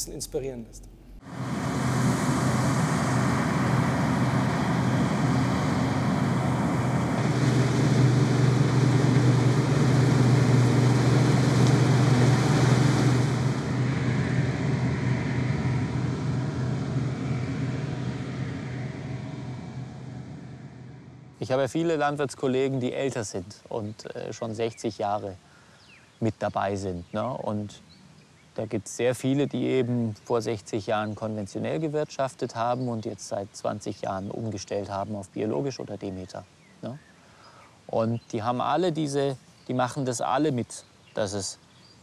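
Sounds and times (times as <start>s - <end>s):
combine harvester running: 1.0s - 21.6s.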